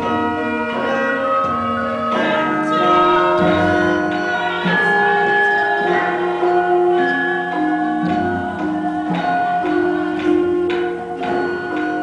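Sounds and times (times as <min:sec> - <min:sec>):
gamelan ensemble playing: 0:00.0 - 0:12.0.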